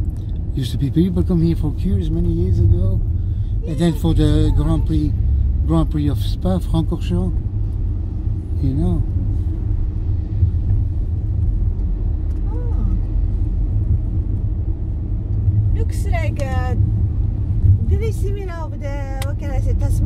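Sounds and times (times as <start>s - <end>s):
car engine and tyres rumble: 0.0s - 20.0s
people talking: 0.6s - 3.0s, 3.6s - 5.1s, 5.7s - 7.3s, 15.8s - 16.8s, 17.9s - 20.0s.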